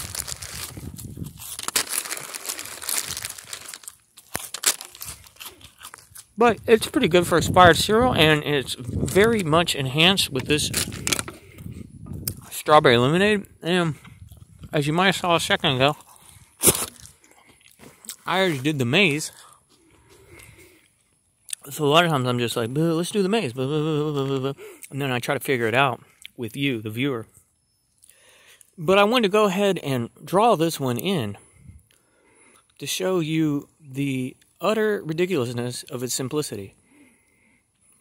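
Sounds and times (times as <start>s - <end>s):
plastic cereal bag crinkling: 0.0s - 6.4s, 8.7s - 11.3s
short crunch: 0.0s - 6.7s, 15.7s - 21.6s.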